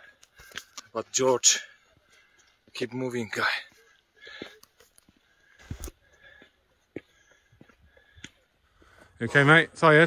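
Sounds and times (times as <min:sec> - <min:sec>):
footsteps on rocky stone path: 0:00.0 - 0:09.5.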